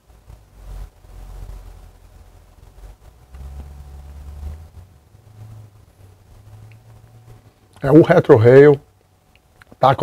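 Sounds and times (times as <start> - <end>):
deep low hum: 0.0 - 8.4
steady low rumble: 0.0 - 10.0.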